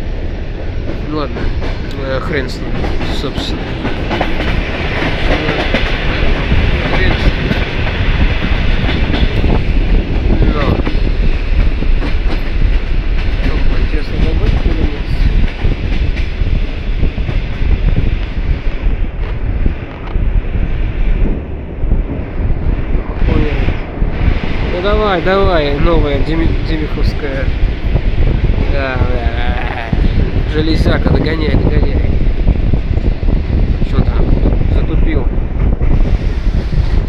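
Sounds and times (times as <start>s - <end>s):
train wheels on rails: 0.0s - 37.0s.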